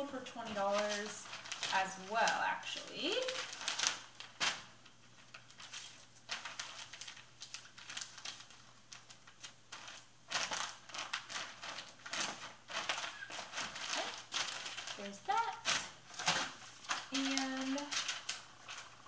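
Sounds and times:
plastic mailer bag crinkling: 0.0 - 19.0.

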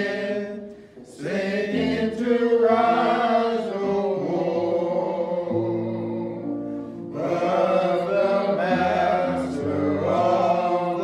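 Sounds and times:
slow gospel singing: 0.0 - 11.0.

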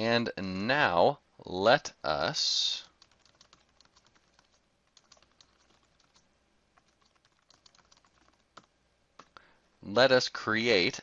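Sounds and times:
computer keyboard typing: 2.8 - 9.4.

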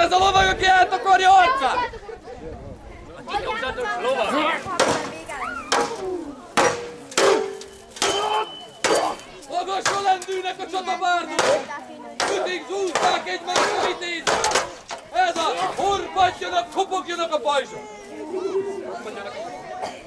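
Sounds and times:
weapons striking shields and armour: 4.7 - 10.4, 11.3 - 15.6
people shouting: 4.8 - 10.2, 11.3 - 15.7.

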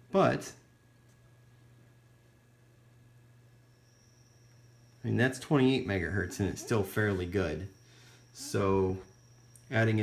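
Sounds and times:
faint high whine: 0.0 - 10.0
faint low hum: 0.0 - 10.0.

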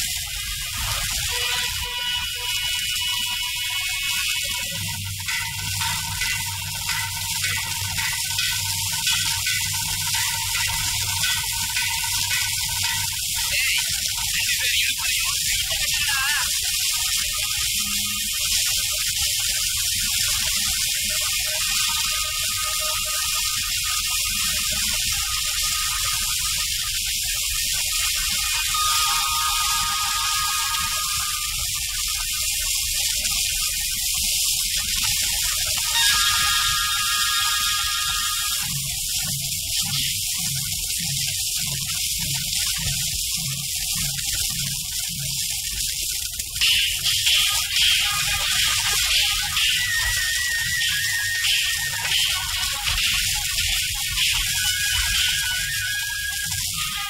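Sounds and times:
drum keeping even beat: 5.0 - 13.2.

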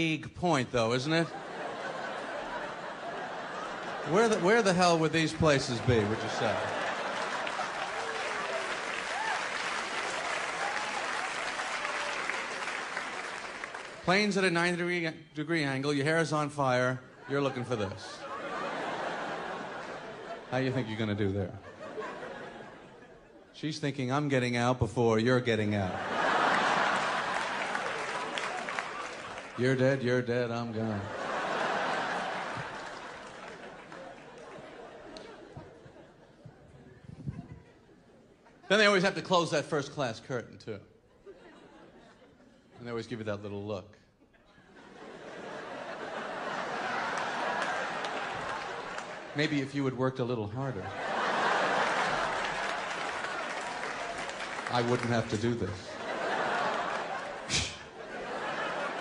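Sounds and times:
audience laughing: 1.0 - 14.0, 17.1 - 23.5, 25.6 - 39.2, 41.1 - 42.8, 44.2 - 59.0
audience applauding: 3.2 - 14.3, 26.2 - 30.0, 30.9 - 35.4, 45.6 - 49.7, 50.9 - 59.0.

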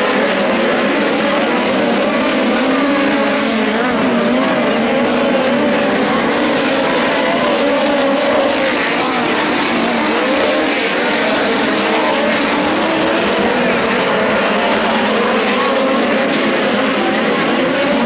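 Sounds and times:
race car engines lapping: 0.0 - 18.0.

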